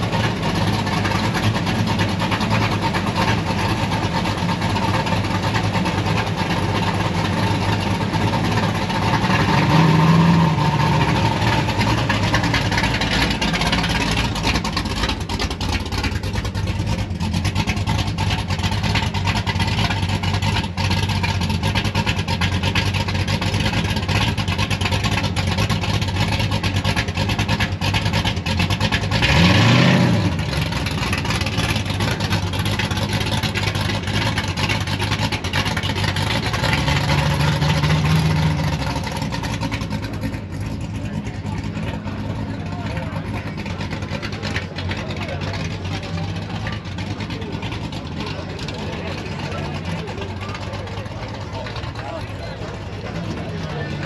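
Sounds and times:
car engines driving past: 0.0 - 54.0
engine revving: 0.0 - 54.0.

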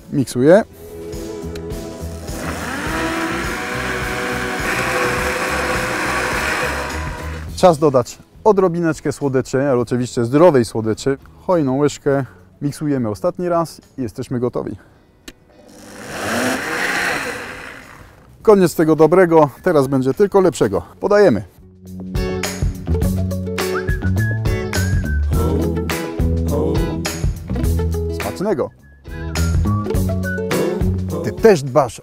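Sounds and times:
blender running: 2.0 - 7.5, 15.6 - 18.2.

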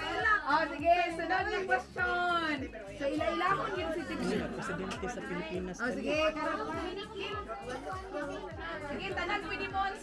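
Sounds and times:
chatter of children and adults: 0.0 - 10.0
low thumping beat: 0.0 - 10.0.

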